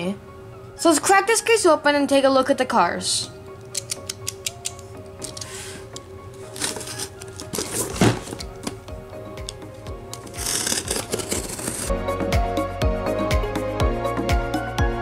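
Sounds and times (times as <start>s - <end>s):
background music: 0.0s - 15.0s
knife slicing packing tape: 6.4s - 8.4s, 10.2s - 11.9s.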